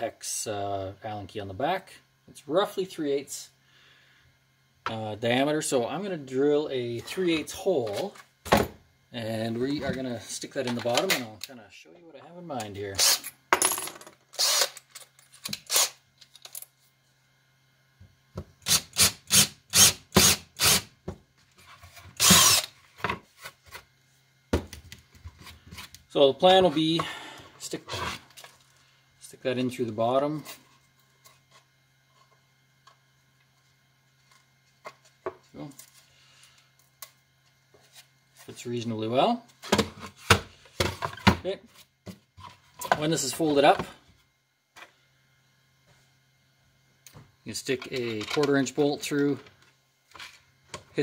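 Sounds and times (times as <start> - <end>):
faint room hum: 0.0 - 51.0
cordless drill boring into wood: 14.4 - 14.8, 15.6 - 16.0, 18.6 - 20.9, 22.2 - 22.7.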